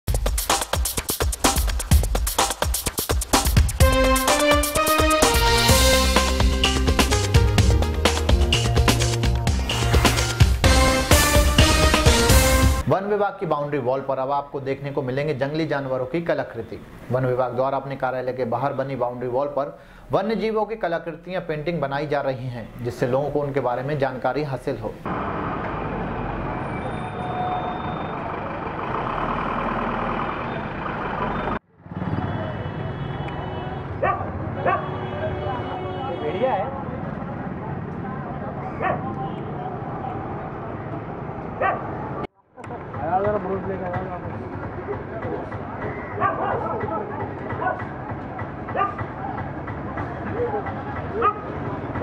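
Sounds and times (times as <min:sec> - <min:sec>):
traffic: 0:14.6 - 0:20.1, 0:22.0 - 0:52.0.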